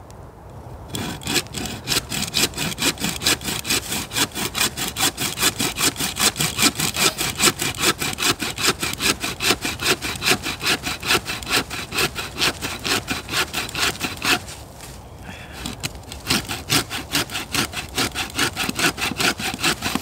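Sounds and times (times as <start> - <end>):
saw cutting through log: 0.9 - 14.6, 15.6 - 20.0.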